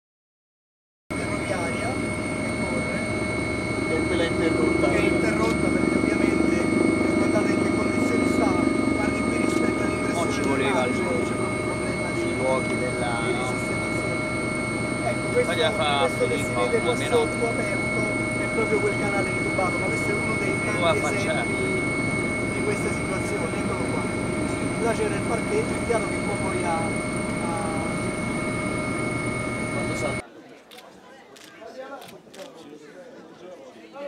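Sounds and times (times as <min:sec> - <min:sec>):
helicopter cabin rumble: 0:01.1 - 0:30.2
high-pitched whines: 0:01.1 - 0:30.2.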